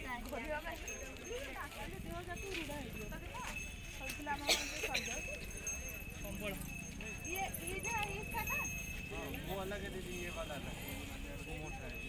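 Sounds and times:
people talking indistinctly: 0:00.0 - 0:12.0.

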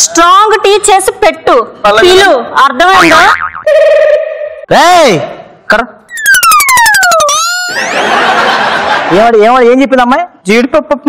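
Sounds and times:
cartoon falling whistle with clicks: 0:06.1 - 0:08.0
studio audience laughter: 0:07.7 - 0:09.2.

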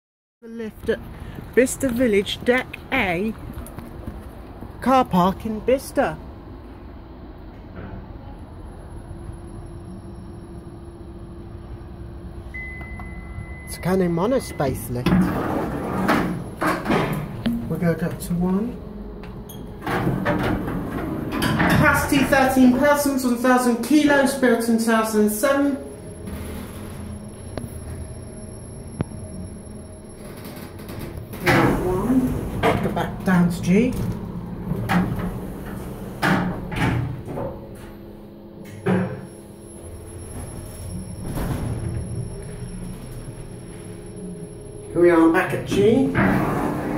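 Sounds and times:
lift hum: 0:00.9 - 0:46.9.

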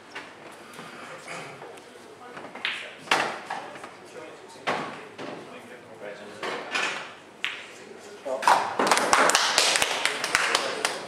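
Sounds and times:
people clapping: 0:08.5 - 0:11.0.

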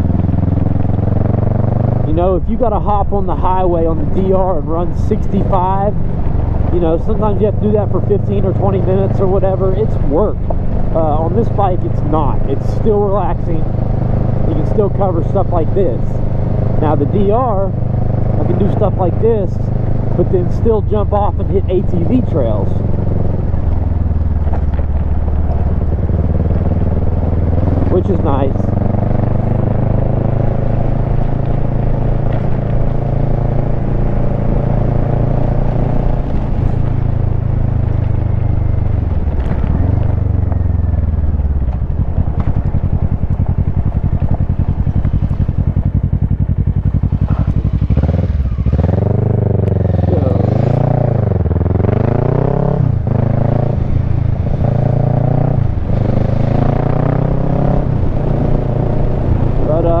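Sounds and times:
motorcycle engine running: 0:00.0 - 1:00.0.

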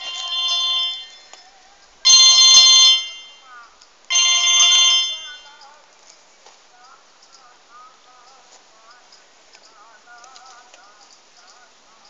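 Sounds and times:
mobile phone ringtone: 0:00.0 - 0:03.5, 0:04.1 - 0:05.6.

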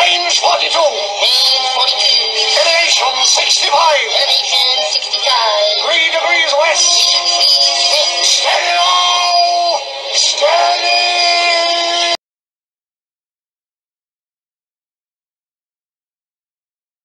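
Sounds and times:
pitch-shifted singing over music: 0:00.0 - 0:12.2.

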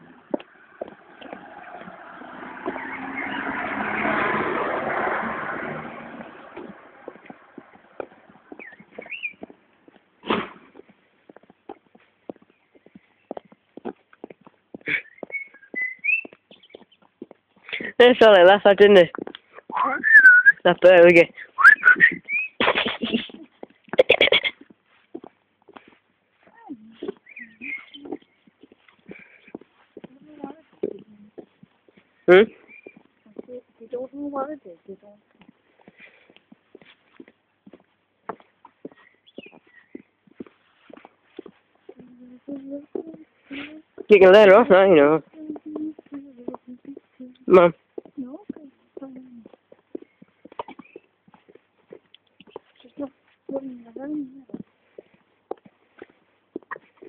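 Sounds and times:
vehicle passing: 0:00.0 - 0:09.8
footsteps on pavement: 0:00.0 - 0:57.0.

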